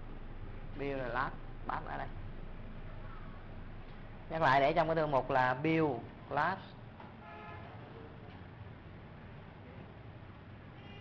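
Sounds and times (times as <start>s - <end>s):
background room noise: 0.0s - 11.0s.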